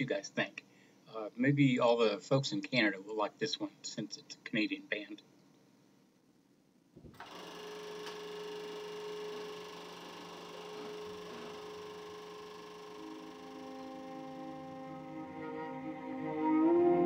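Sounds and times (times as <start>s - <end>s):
film projector whirring: 7.2s - 15.3s
bowed string notes: 13.0s - 17.0s.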